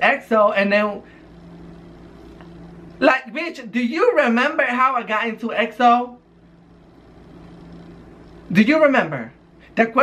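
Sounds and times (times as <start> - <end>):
faint low rumble and hum: 0.0 - 10.0.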